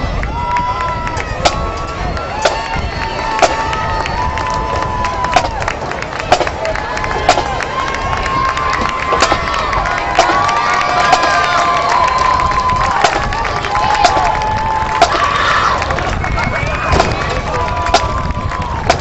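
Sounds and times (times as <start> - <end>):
crowd cheering and yelling: 0.0 - 19.0.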